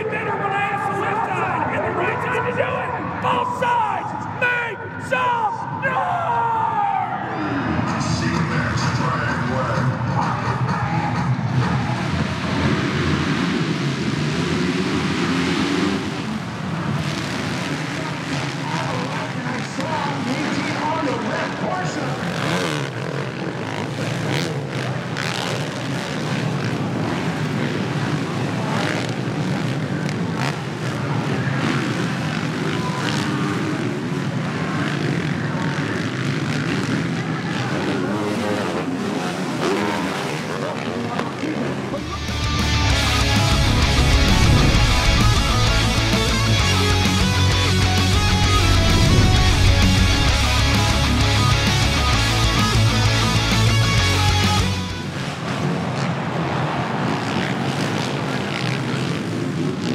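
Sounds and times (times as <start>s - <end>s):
motocross bike engines revving: 0.0s - 59.9s.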